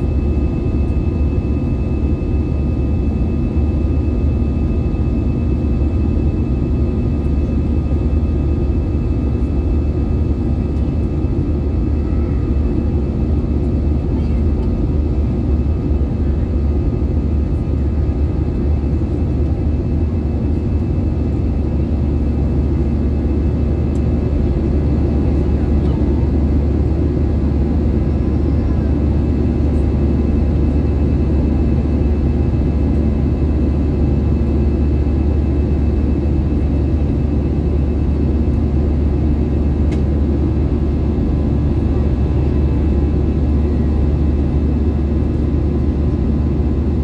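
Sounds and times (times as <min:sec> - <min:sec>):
airplane cabin engine rumble: 0:00.0 - 0:47.0.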